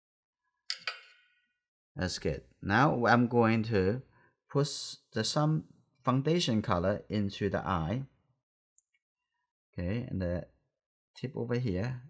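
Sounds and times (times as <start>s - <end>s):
paintbrush clinking on ceramic: 0.7s - 1.3s.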